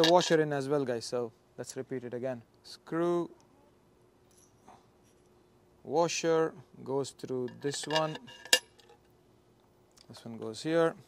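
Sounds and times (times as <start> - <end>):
metallic clink of screw: 0.0 - 0.4, 7.4 - 9.0.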